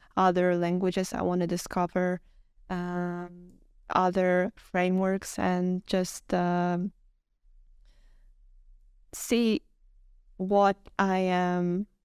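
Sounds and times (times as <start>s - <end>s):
woman breathing: 7.8s - 8.6s.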